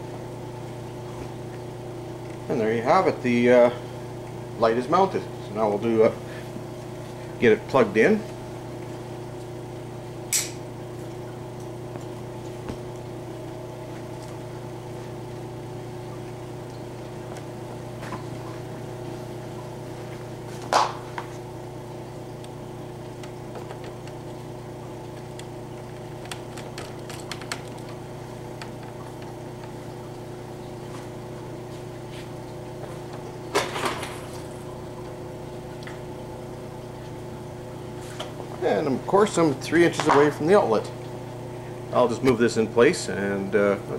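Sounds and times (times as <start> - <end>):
electric motor hum: 0.0 - 43.9
handling clicks and knocks: 25.2 - 28.0.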